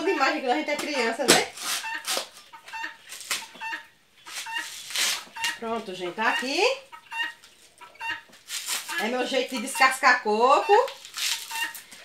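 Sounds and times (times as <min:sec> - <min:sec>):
coconut fibre tearing: 0:01.2 - 0:02.4, 0:03.1 - 0:03.5, 0:04.3 - 0:05.6, 0:08.3 - 0:09.0, 0:10.8 - 0:12.0
guinea fowl calling: 0:01.8 - 0:12.0.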